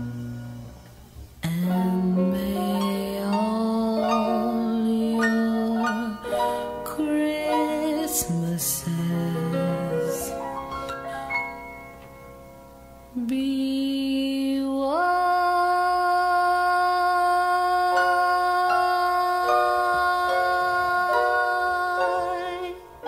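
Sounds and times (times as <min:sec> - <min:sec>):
long held chord: 0:15.0 - 0:23.0.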